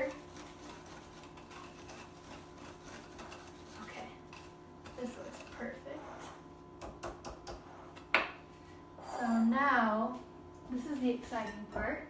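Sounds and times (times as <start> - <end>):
whisk scraping mixing bowl: 0.0 - 6.5.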